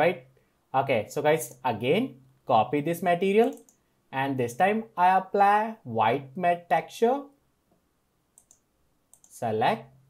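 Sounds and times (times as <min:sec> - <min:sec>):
computer mouse double-click: 0:03.4 - 0:03.8, 0:08.4 - 0:09.4.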